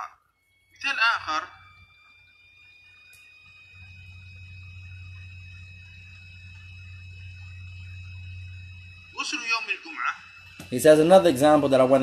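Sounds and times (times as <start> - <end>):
faint high-pitched whining tones: 0.0 - 12.0
low steady hum: 0.1 - 12.0.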